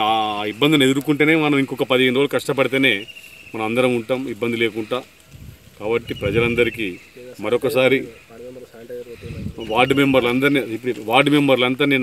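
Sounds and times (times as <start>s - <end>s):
man talking: 0.0s - 5.1s, 5.8s - 12.0s.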